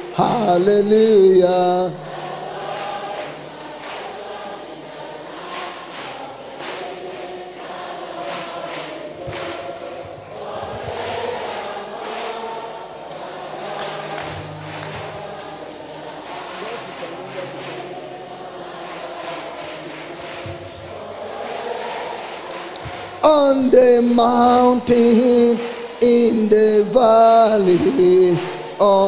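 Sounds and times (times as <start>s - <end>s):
congregation singing gospel: 0.0s - 29.0s.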